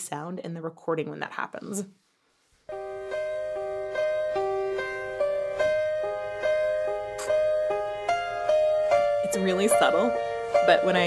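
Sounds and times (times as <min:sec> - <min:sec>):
slow piano ballad: 0:02.7 - 0:11.0.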